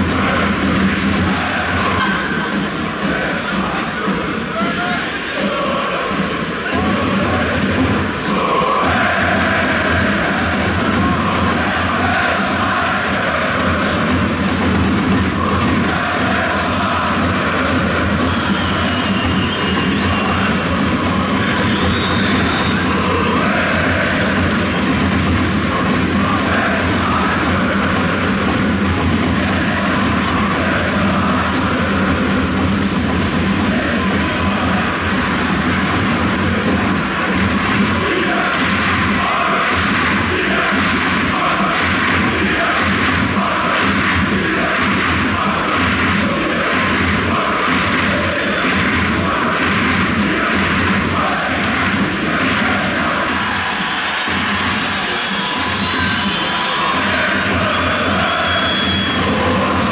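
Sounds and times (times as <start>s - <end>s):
crowd singing a chant: 0.0s - 59.9s.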